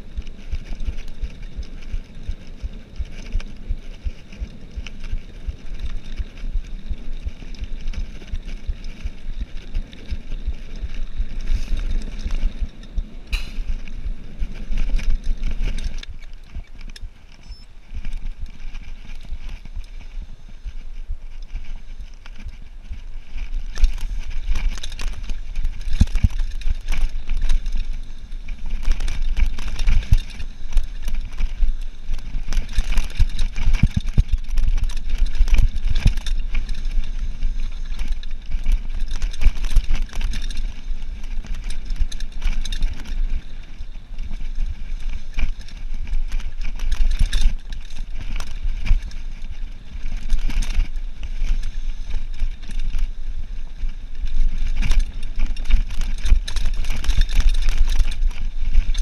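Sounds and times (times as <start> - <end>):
bike rattling and knocking: 0.0 - 59.0
bike tyres rumbling on dirt: 0.0 - 59.0.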